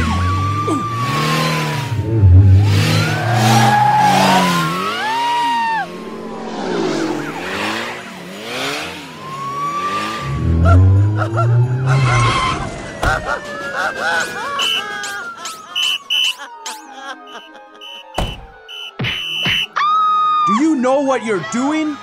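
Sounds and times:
long tone sliding down: 5.4 - 8.3.

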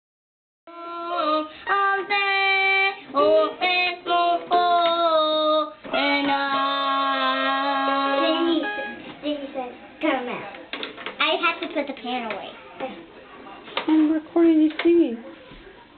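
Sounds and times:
girl singing into toy microphone: 0.7 - 8.9
toy electronic piano notes: 8.2 - 9.0.

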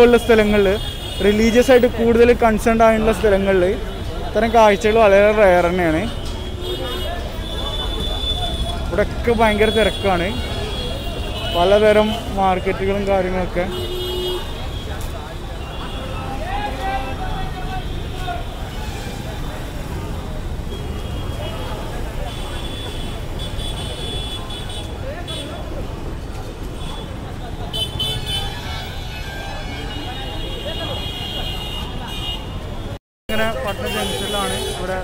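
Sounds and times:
vehicle horns tooting: 0.0 - 2.0, 3.2 - 25.9, 26.8 - 35.0
traffic rumble: 0.0 - 35.0
crowd voices: 1.4 - 35.0.

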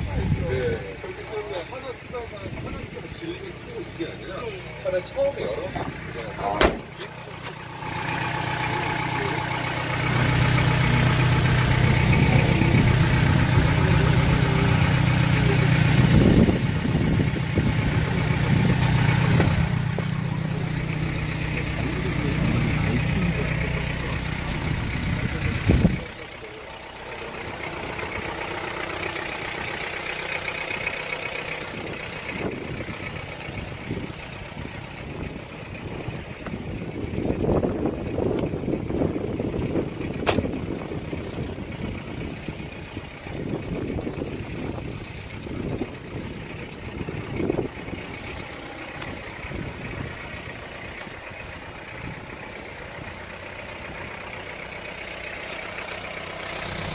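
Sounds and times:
diesel engine idling: 0.0 - 56.9
sharp knock: 6.6 - 6.9.

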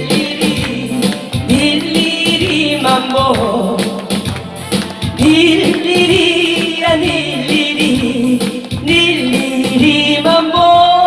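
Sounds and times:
backing music with steady beat: 0.0 - 11.0
woman singing into a microphone: 0.0 - 11.0.

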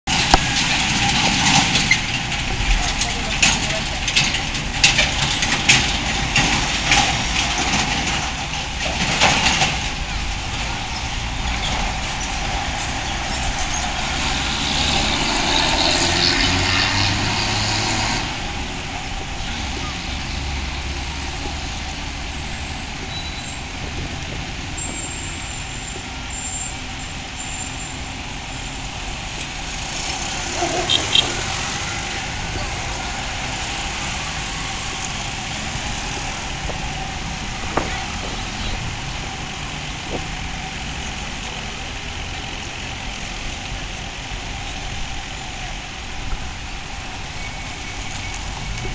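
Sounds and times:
vehicle engine running: 0.0 - 48.9
people's voices: 1.8 - 5.7, 18.2 - 25.0, 30.2 - 48.9.

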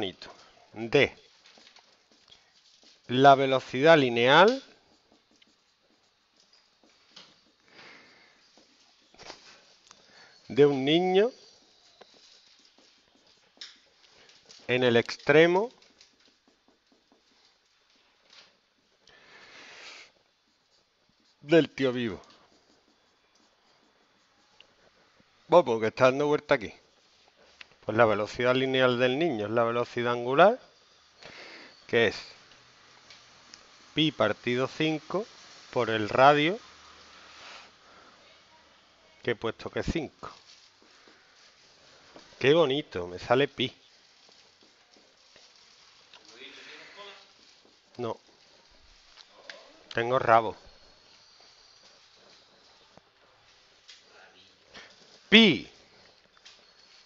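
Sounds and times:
marker writing on whiteboard: 0.3 - 29.2.

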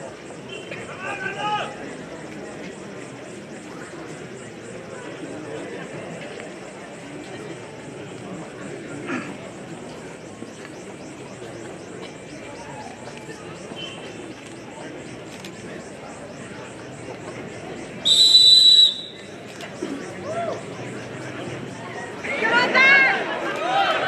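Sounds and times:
crowd chatter: 0.0 - 24.0
referee whistle blast: 18.0 - 19.2.

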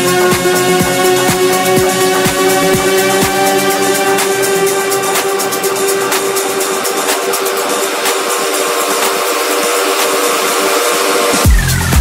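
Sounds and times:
sustained synth chords: 0.0 - 12.0.

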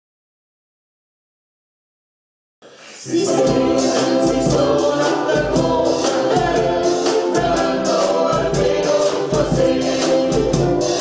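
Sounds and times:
voices singing together: 2.7 - 11.0
ukulele ensemble strumming: 3.1 - 11.0.

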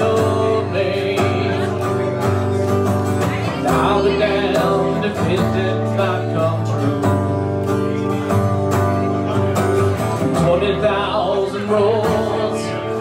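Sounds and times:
acoustic guitar strummed: 0.0 - 13.0.

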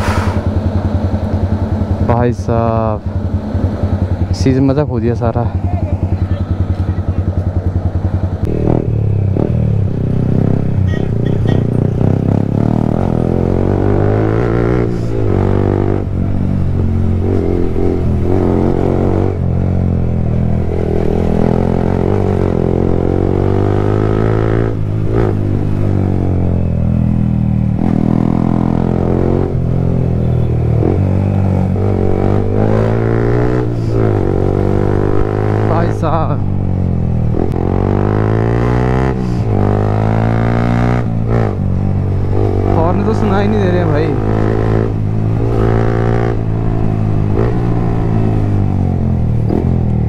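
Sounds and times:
motorcycle engine accelerating: 0.0 - 50.0.

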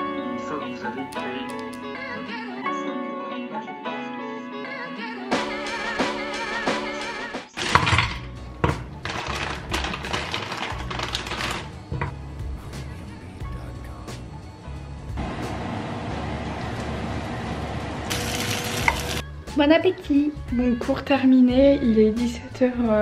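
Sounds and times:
background music: 0.0 - 23.0
frozen potatoes knocking into pan: 7.6 - 12.1
potatoes sizzling: 18.0 - 19.2.

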